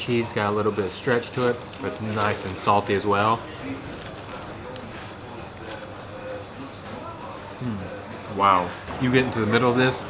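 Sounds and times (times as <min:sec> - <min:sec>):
faint background voices: 0:00.0 - 0:10.0
paper-wrapped bread bitten and chewed: 0:01.2 - 0:03.0, 0:03.7 - 0:06.0.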